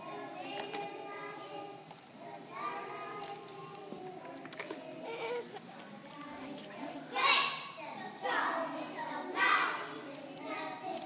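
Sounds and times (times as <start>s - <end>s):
young children's voices: 0.0s - 11.0s.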